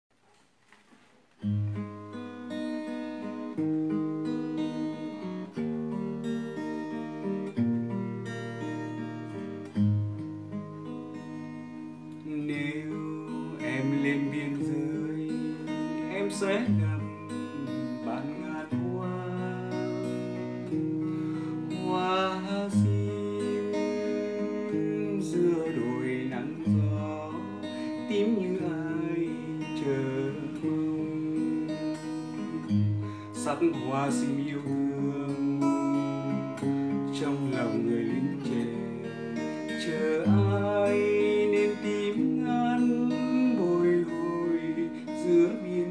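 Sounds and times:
fingerpicked classical guitar: 0:00.2 - 0:45.9.

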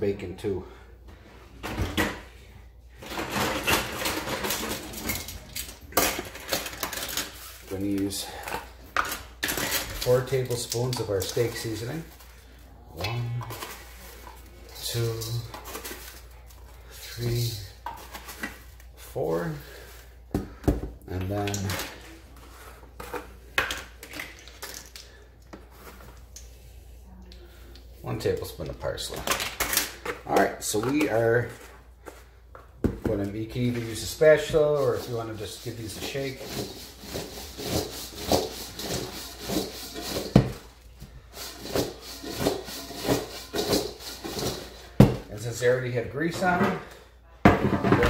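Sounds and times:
vegetables rattling in a metal bowl: 0:03.0 - 0:12.2, 0:33.2 - 0:46.6.

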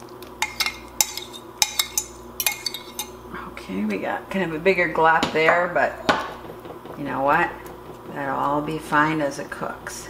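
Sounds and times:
metal spoon scraping glass: 0:00.4 - 0:03.2.

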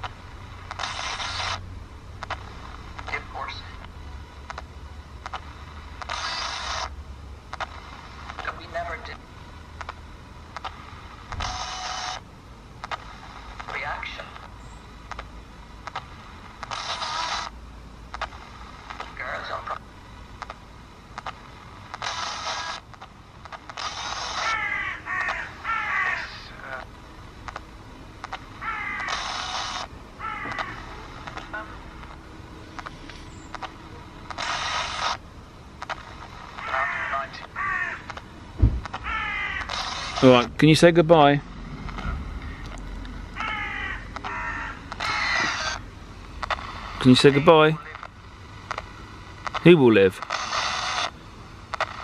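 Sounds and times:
clipped broadcast fragments: 0:00.0 - 0:24.6, 0:26.2 - 0:30.0, 0:30.6 - 0:42.8, 0:44.0 - 0:52.0
radio clicks stepping frequencies: 0:00.0 - 0:52.0
static hiss bursts: 0:00.0 - 0:52.0
crow cawing: 0:23.9 - 0:26.9, 0:28.5 - 0:31.9, 0:36.6 - 0:38.2, 0:39.0 - 0:40.4, 0:42.0 - 0:45.9.

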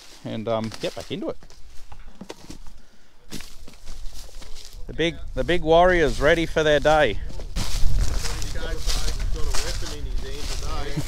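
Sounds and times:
footsteps crunching through dry stubble: 0:00.0 - 0:11.0.

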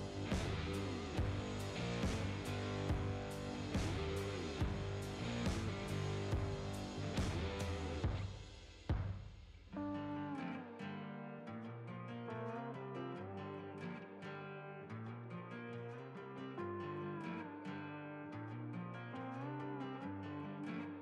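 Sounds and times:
guitar music: 0:00.0 - 0:08.3, 0:09.7 - 0:21.0.

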